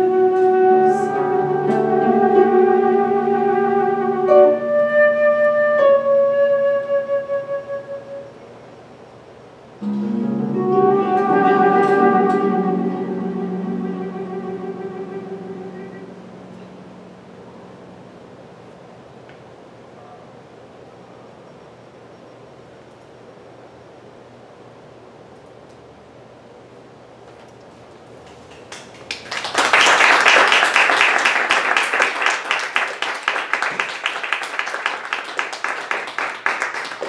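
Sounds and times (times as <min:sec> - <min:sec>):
harp accompaniment: 0:00.0 - 0:06.1, 0:09.8 - 0:18.3
mezzo-soprano singing with vibrato: 0:00.0 - 0:06.2, 0:09.8 - 0:17.2.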